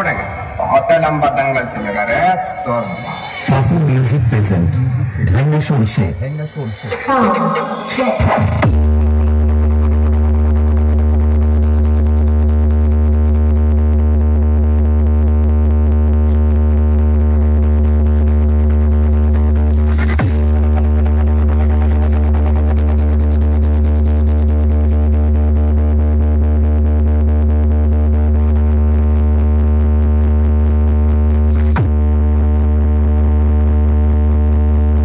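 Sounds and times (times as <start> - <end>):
deep bass tone from speakers: 0.0 - 35.0.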